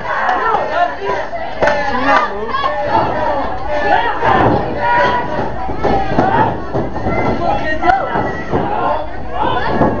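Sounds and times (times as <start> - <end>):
crowd shouting and yelling: 0.0 - 10.0.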